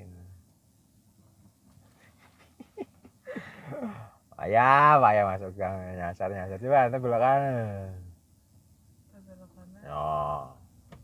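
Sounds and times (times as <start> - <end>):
car interior hum: 0.0 - 11.0.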